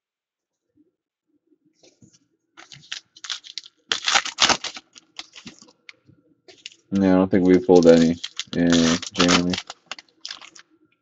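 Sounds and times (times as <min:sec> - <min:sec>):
foil wrapper crinkling: 0:02.6 - 0:05.9, 0:06.5 - 0:10.6.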